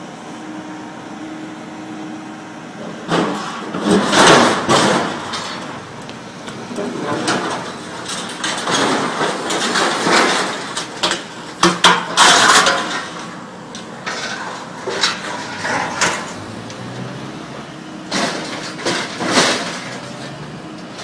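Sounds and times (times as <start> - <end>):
hydraulic scrap shear running: 0.0 - 21.0
metal grinding and screeching: 12.1 - 21.0.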